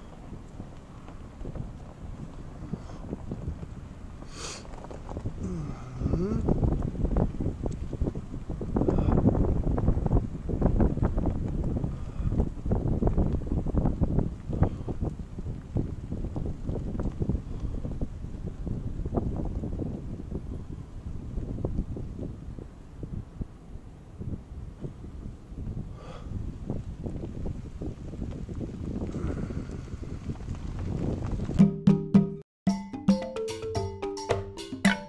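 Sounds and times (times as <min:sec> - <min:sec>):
wind buffeting microphone: 0:00.0 - 0:31.6.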